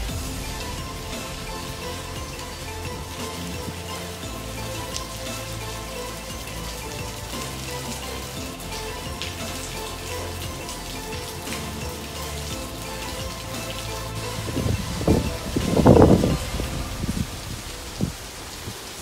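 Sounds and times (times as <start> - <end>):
loud low rumble: 0.0 - 3.2
background music with low notes: 0.0 - 19.0
heavy rain on pavement and cars: 0.0 - 19.0.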